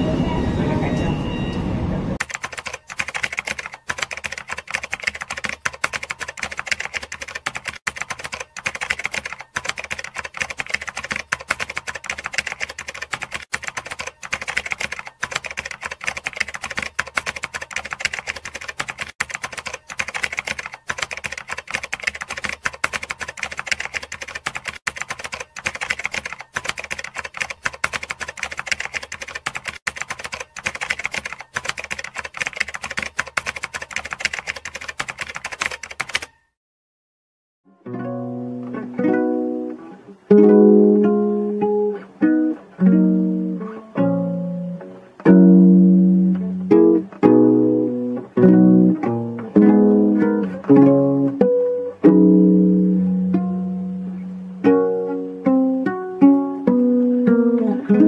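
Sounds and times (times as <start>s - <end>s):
keyboard typing clatter: 2.2s - 36.3s.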